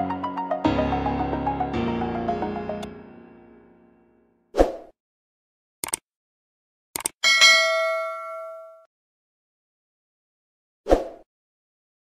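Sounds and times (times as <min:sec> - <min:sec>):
quick clicks: 0:05.8 - 0:06.0, 0:07.0 - 0:07.2
bright bell ding: 0:07.2 - 0:08.9.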